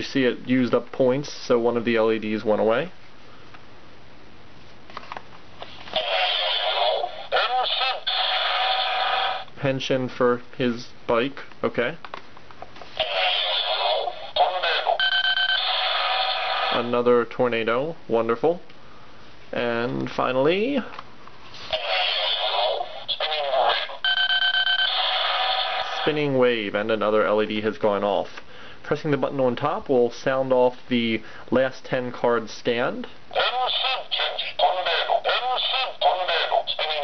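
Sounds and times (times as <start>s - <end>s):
toy electronic sound effects: 5.9s - 9.5s, 13.0s - 16.9s, 21.7s - 26.2s, 33.3s - 37.0s
recorded voice call: 5.9s - 12.0s, 13.0s - 18.6s, 21.7s - 37.0s.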